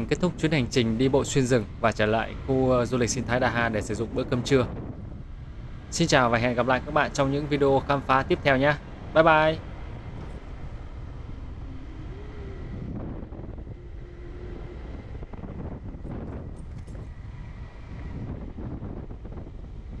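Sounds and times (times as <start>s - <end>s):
wind noise on microphone: 0.0s - 20.0s.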